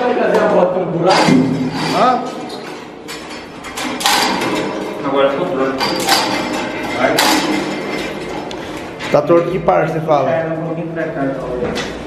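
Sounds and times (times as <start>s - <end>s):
metal rattling and scraping: 1.0s - 10.0s
metal clank: 1.1s - 5.0s, 5.7s - 9.1s.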